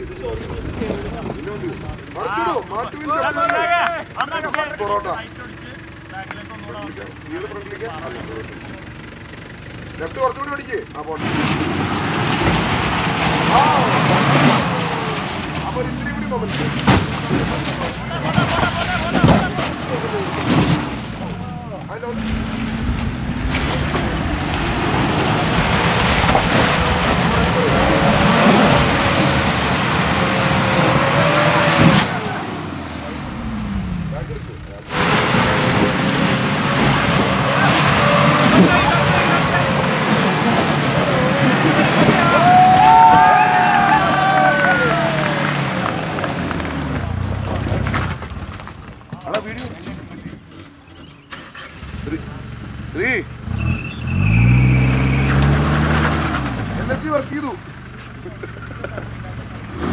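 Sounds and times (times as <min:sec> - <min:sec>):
engine revving under load: 0:00.0 - 0:50.6, 0:51.3 - 0:59.9
onlookers talking: 0:00.0 - 0:59.9.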